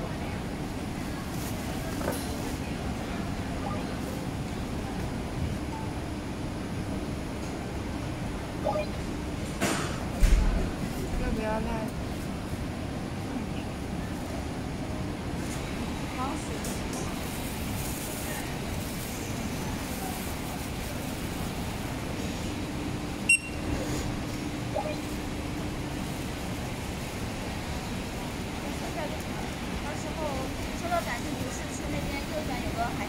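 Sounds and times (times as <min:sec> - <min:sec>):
background chatter: 0:00.0 - 0:08.0, 0:09.6 - 0:33.0
store noise hum: 0:00.0 - 0:33.0.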